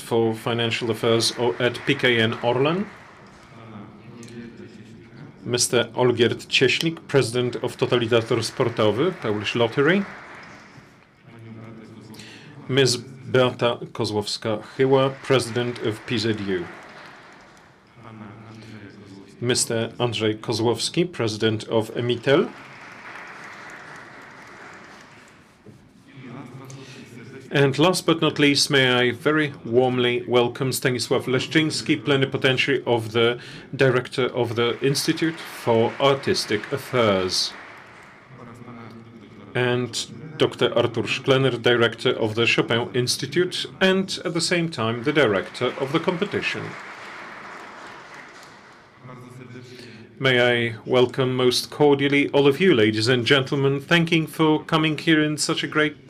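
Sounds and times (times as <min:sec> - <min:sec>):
audience applauding: 0:00.5 - 0:03.6, 0:07.2 - 0:11.2, 0:14.4 - 0:17.9, 0:21.9 - 0:25.6, 0:34.3 - 0:38.7, 0:44.8 - 0:49.2.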